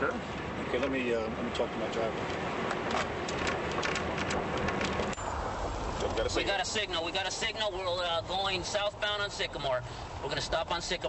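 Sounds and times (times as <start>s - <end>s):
steady hiss with crackles: 1.6s - 11.0s.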